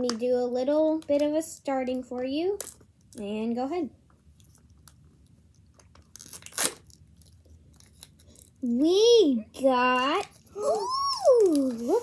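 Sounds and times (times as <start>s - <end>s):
plastic film crackling and ripping: 5.8s - 8.6s.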